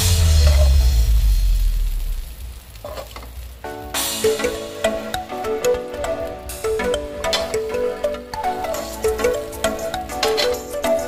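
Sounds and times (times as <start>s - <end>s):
background music: 0.0s - 2.0s, 3.6s - 11.0s
meat sizzling in hot oil: 0.0s - 5.3s.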